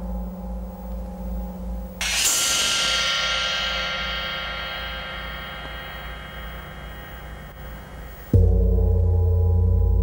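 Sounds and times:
low steady hum: 0:00.0 - 0:10.0
ringing metal percussion: 0:00.0 - 0:10.0.

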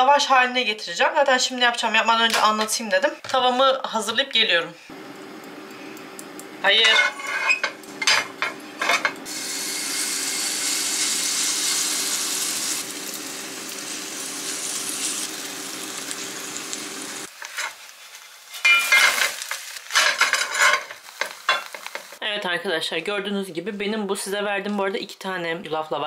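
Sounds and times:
batter sizzling in frying pan: 0:05.0 - 0:22.2
spatula scraping and tapping pan: 0:20.0 - 0:22.2.

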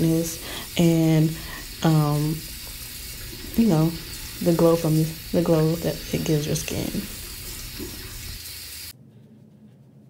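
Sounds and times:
water running from sink tap: 0:00.0 - 0:08.9.

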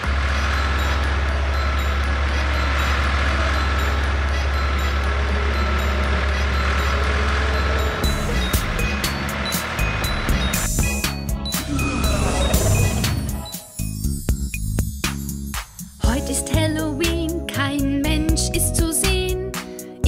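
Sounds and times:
music with sharp clicks: 0:00.0 - 0:13.8
cartoon tractor engine rumble: 0:00.0 - 0:14.8.

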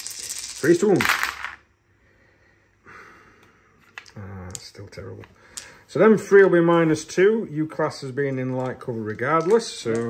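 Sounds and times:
dice clattering in wooden tray: 0:00.0 - 0:01.6, 0:03.9 - 0:04.7, 0:05.5 - 0:06.6, 0:08.2 - 0:10.0.

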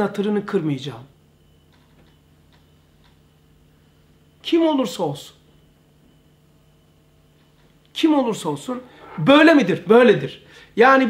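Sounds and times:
low steady hum: 0:00.0 - 0:11.0
faint regular ticking: 0:01.6 - 0:03.7.

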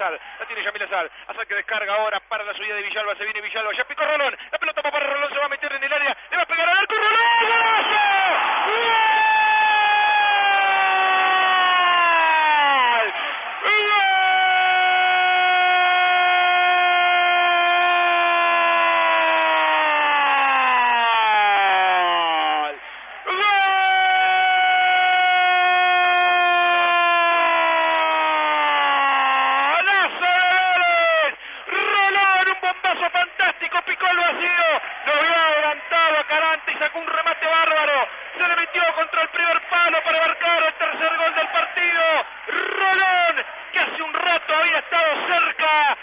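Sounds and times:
commentator's drawn-out goal cry: 0:05.5 - 0:46.0.

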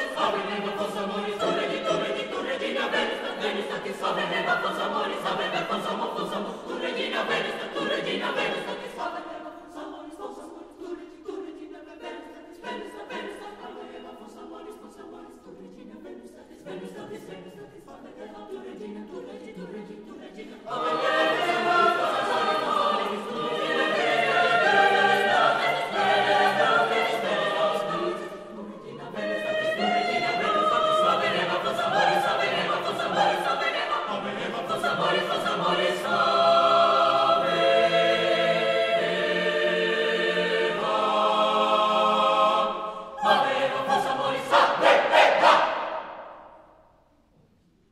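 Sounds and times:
mixed choir singing a cappella: 0:00.0 - 0:46.8.

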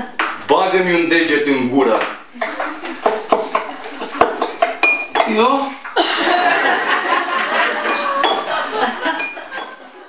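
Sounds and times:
glasses and dishes clinking: 0:02.4 - 0:06.8, 0:07.5 - 0:10.0.

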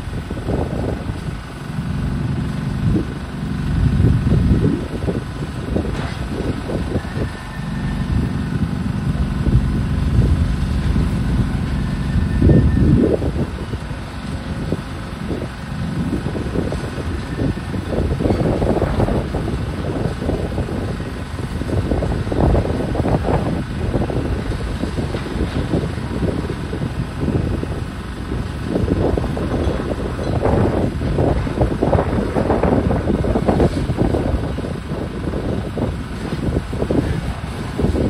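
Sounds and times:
excavator diesel engine running: 0:00.0 - 0:38.0
wind rumbling on microphone: 0:00.0 - 0:38.0.

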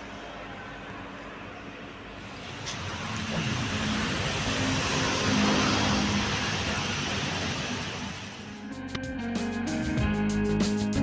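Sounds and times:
vehicle driving past: 0:02.0 - 0:08.7.

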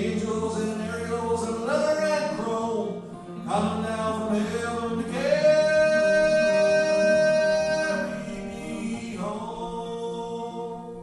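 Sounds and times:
guitar harp and cello playing: 0:00.0 - 0:11.0.

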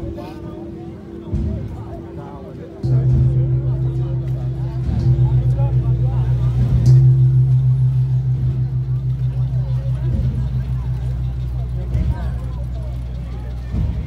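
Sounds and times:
gong struck with mallet: 0:01.2 - 0:14.0.

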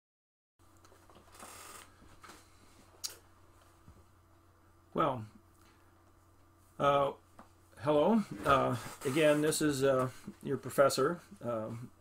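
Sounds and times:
low steady hum: 0:00.6 - 0:12.0
soft rustle: 0:08.2 - 0:10.8.

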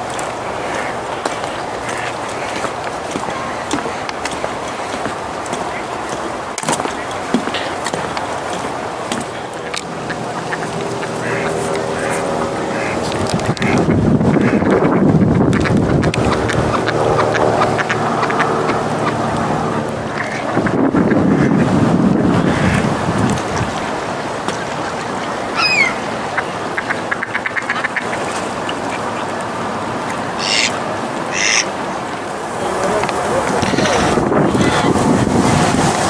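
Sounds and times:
wind on microphone: 0:00.0 - 0:26.7, 0:30.8 - 0:36.0
ducks quacking: 0:00.0 - 0:36.0
short higher bird calls: 0:25.6 - 0:26.0.

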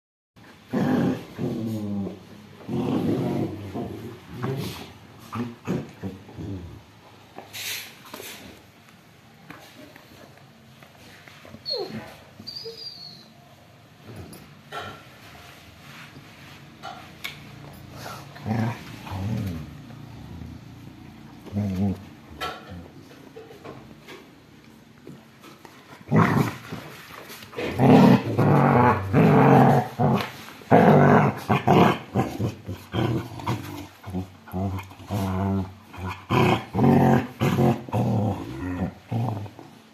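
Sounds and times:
dogs growling: 0:00.7 - 0:07.0, 0:17.9 - 0:23.2, 0:26.0 - 0:26.8, 0:27.5 - 0:39.9.

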